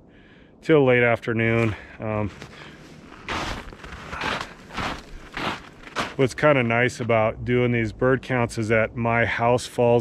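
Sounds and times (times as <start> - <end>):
footsteps crunching on snow: 1.4 - 7.1.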